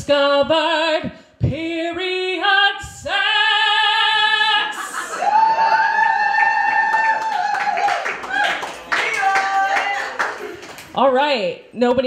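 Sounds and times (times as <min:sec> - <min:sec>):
woman singing with vibrato: 0:00.0 - 0:05.1
long held whoop: 0:05.0 - 0:10.1
audience applause and cheering: 0:05.0 - 0:11.0.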